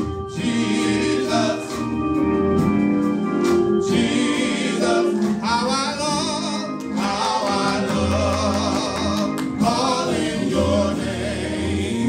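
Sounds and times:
male vocal group singing in harmony: 0:00.0 - 0:02.2, 0:03.8 - 0:12.0.

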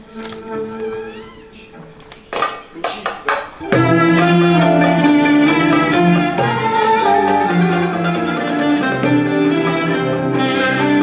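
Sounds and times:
classical ensemble with violin and kanun: 0:00.0 - 0:11.0.

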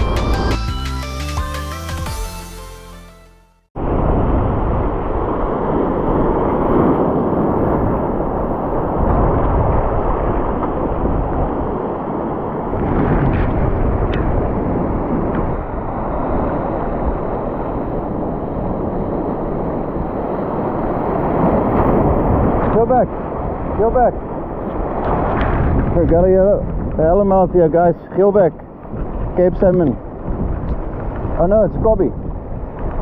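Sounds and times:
wind buffeting microphone: 0:03.8 - 0:33.0.

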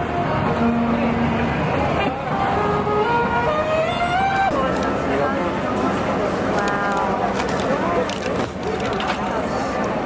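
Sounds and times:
saxophone slow melody: 0:00.0 - 0:04.5
city traffic: 0:00.0 - 0:10.0
crowd noise: 0:00.0 - 0:10.0.

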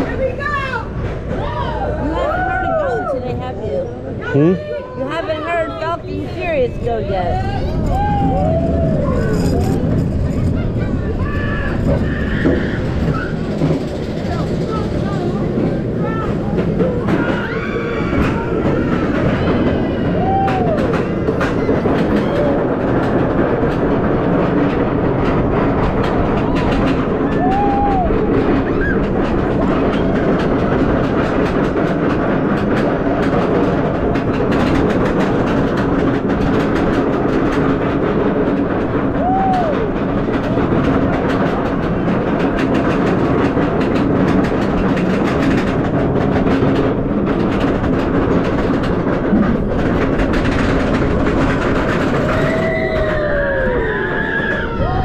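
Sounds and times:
roller coaster lift rattle: 0:00.0 - 0:55.0
wheels squealing: 0:01.3 - 0:23.5, 0:24.4 - 0:31.4, 0:43.9 - 0:55.0.

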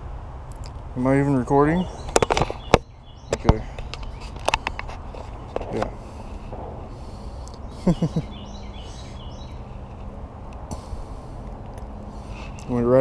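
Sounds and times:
low background hum: 0:00.0 - 0:13.0
handling noise on microphone: 0:02.0 - 0:07.4
faint bird chirps: 0:07.1 - 0:10.1.

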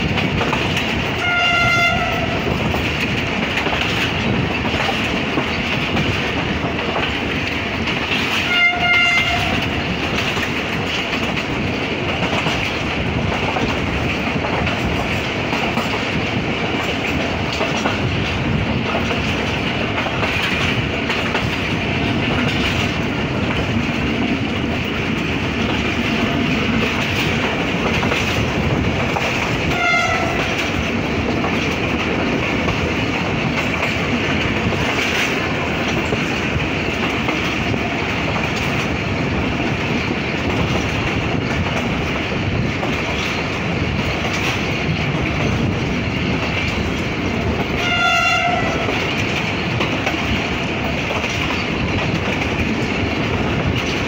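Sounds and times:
train wheels clicking over rail joints: 0:00.0 - 0:54.0
train horn blasts: 0:01.2 - 0:02.4, 0:08.4 - 0:09.6, 0:29.7 - 0:30.5, 0:47.8 - 0:49.0.

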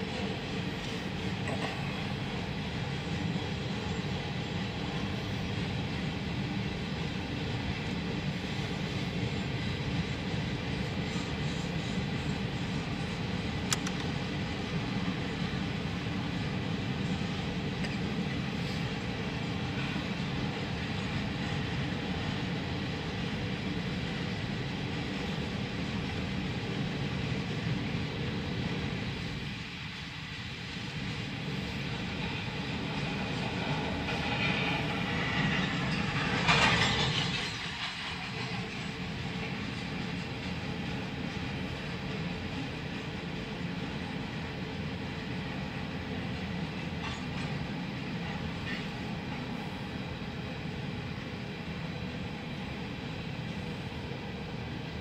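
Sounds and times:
freight train rolling past: 0:00.0 - 0:55.0
steel wheels clattering on rails: 0:31.2 - 0:49.8.

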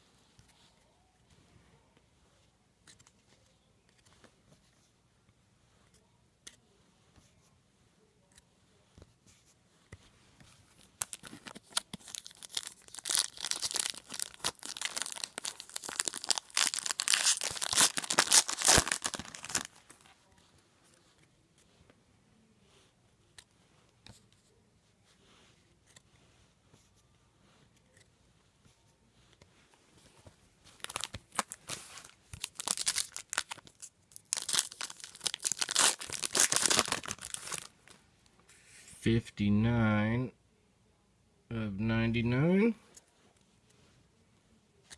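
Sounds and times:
card pack wrapper tearing and crinkling: 0:10.9 - 0:20.1, 0:30.8 - 0:38.0.

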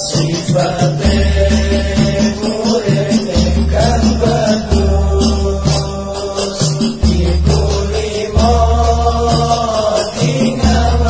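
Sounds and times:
man chanting: 0:00.0 - 0:11.0
ticking rattling percussion: 0:00.0 - 0:11.0.

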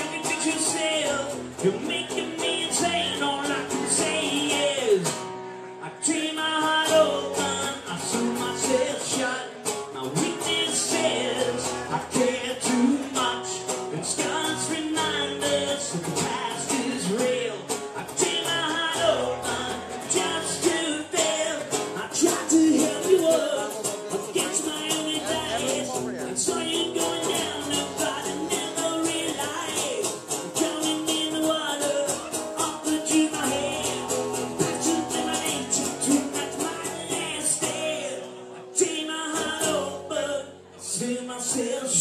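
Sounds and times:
live band music with guitar: 0:00.0 - 0:42.0.

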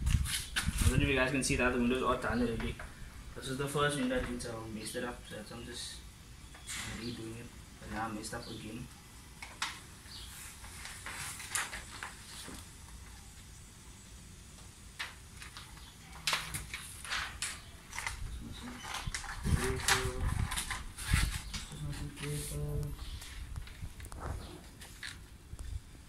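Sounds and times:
plastic film crinkling: 0:09.4 - 0:13.2, 0:15.0 - 0:25.7.

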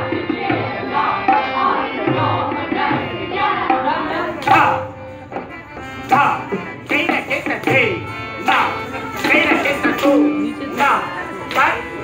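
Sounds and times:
tabla playing: 0:00.0 - 0:12.0
person singing: 0:06.1 - 0:12.0.

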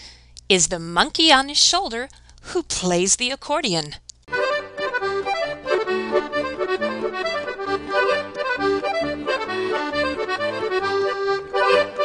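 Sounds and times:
accordion music: 0:04.3 - 0:12.0.

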